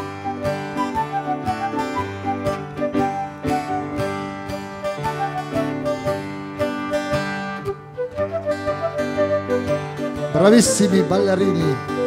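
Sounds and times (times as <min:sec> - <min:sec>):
flute melody: 0:00.0 - 0:12.0
keyboard chords: 0:00.0 - 0:12.0
strummed guitar: 0:00.0 - 0:12.0.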